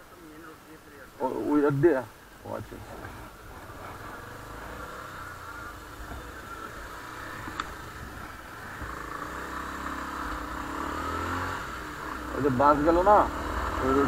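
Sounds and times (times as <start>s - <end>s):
wind and road noise: 0.0s - 14.0s
motorcycle engine running: 3.4s - 14.0s.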